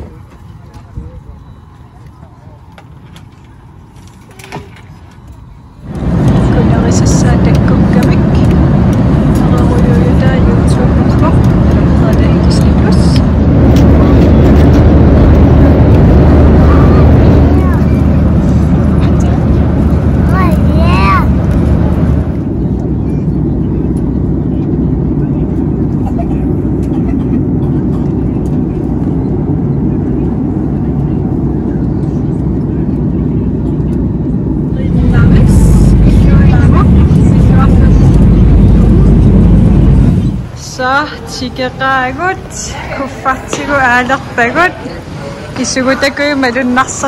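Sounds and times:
airliner cabin roar in flight: 0.0 - 47.0
voices: 0.0 - 47.0.

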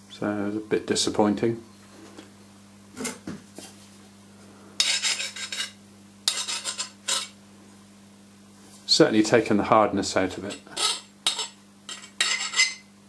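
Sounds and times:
file scraping on steel: 4.8 - 7.4, 10.5 - 12.8.

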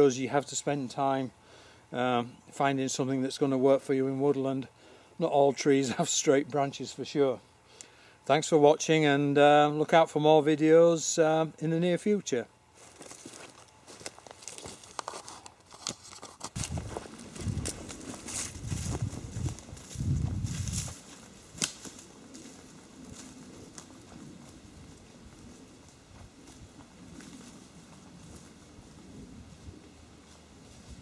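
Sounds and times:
footsteps crunching through leaves: 12.7 - 31.0
close rustling: 12.8 - 31.0.

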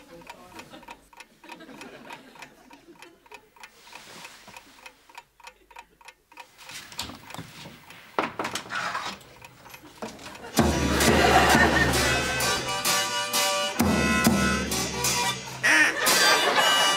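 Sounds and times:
clock ticking: 0.0 - 8.2, 9.1 - 16.9.

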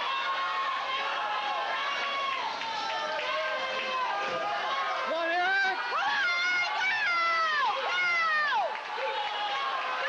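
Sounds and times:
spectators yelling: 0.0 - 10.0.

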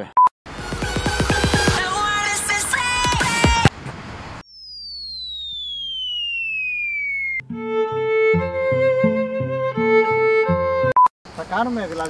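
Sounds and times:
electronic music: 0.6 - 2.1, 4.6 - 9.0
falling whistle sound effect: 4.4 - 7.4.

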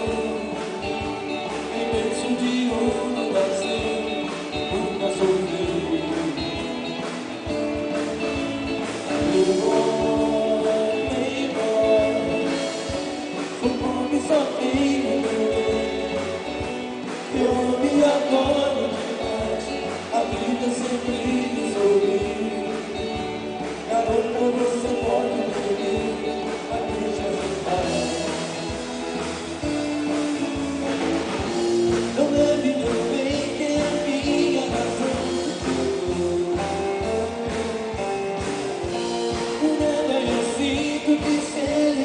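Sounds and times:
man singing into a microphone: 0.0 - 7.0, 9.1 - 28.9, 31.8 - 37.7, 39.3 - 42.0
rock and roll band playing: 0.0 - 42.0.

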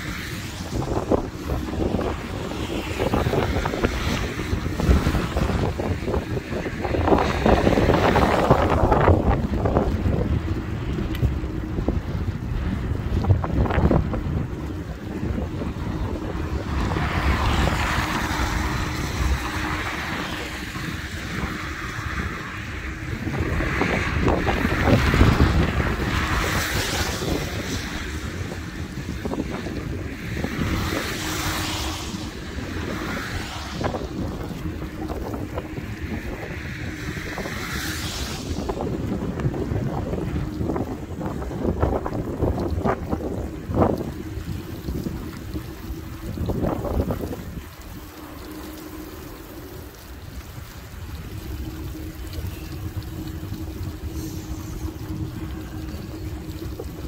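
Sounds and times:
tyre noise on wet asphalt: 0.0 - 57.0
wind buffeting microphone: 0.0 - 57.0.

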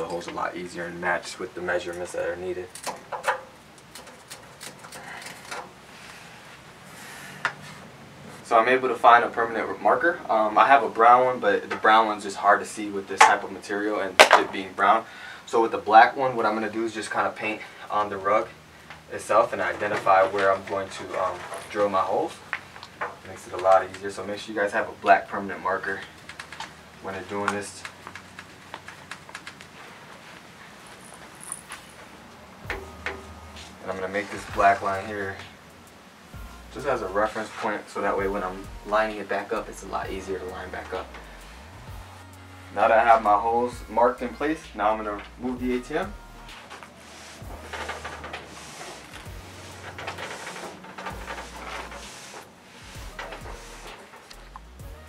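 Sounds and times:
hands clicking and tapping: 27.8 - 29.7
machine base scraping on rug: 46.6 - 54.0.

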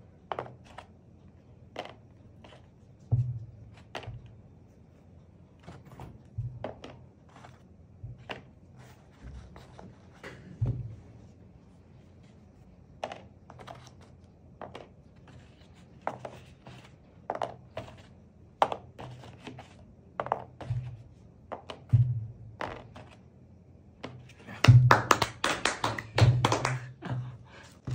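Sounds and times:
person clapping quickly: 24.5 - 27.2.

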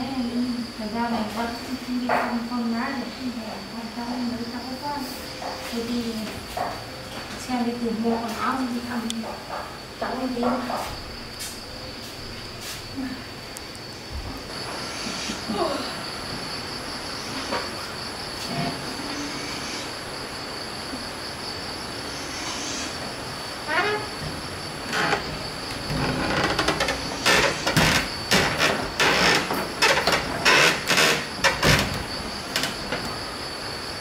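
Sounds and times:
wooden doors shutting and latching: 23.6 - 33.2.

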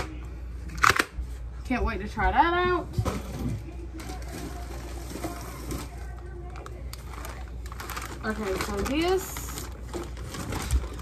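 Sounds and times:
plastic packaging crinkling: 3.9 - 11.0.

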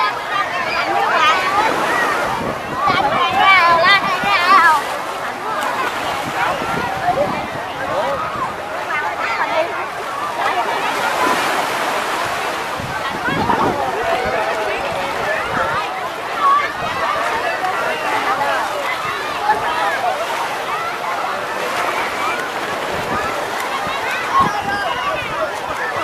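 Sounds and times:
crowd shouting and chattering: 0.0 - 26.0
small waves washing in: 0.0 - 26.0
water splashing: 0.0 - 26.0.

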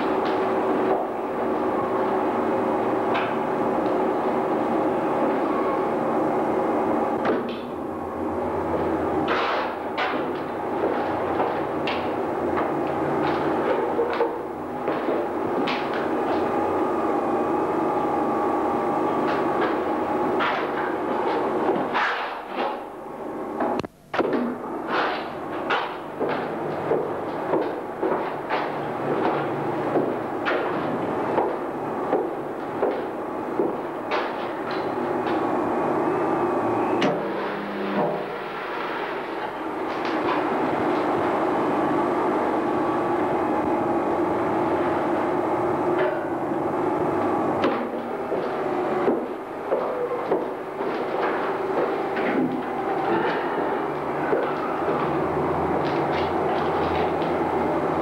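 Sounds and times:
steady mechanical hum: 0.0 - 58.0.

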